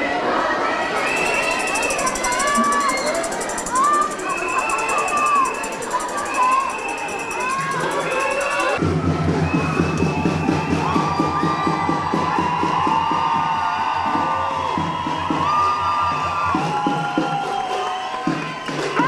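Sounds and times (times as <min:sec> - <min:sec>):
crowd cheering and shouting: 0:00.0 - 0:19.0
high-pitched cries: 0:01.0 - 0:08.8
fast steady drumbeat: 0:01.0 - 0:13.5.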